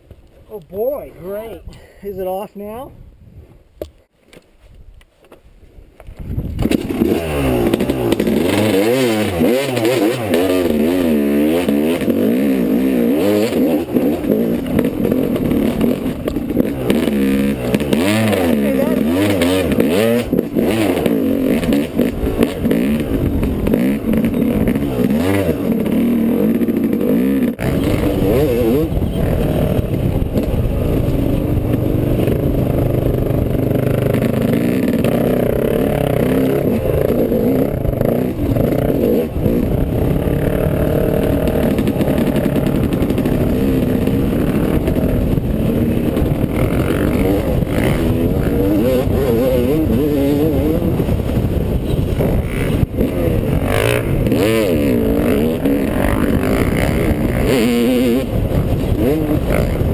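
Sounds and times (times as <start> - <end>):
dirt bike engine revving: 6.6 - 59.9.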